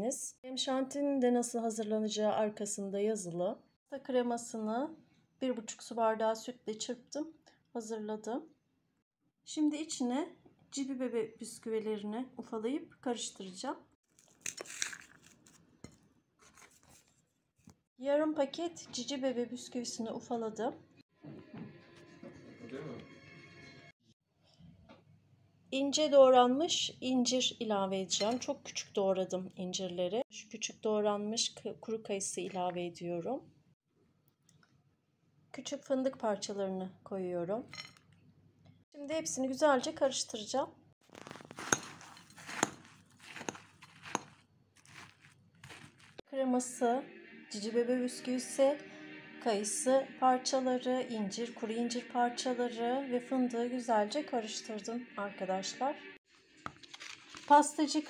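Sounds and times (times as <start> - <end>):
biscuits crumbling by hand: 14.0 - 17.1, 41.0 - 46.2, 56.6 - 57.5
spoon scraping in bowl: 14.4 - 17.1, 41.1 - 46.2
spoon clinking against bowl: 28.2 - 28.6, 41.6 - 44.4.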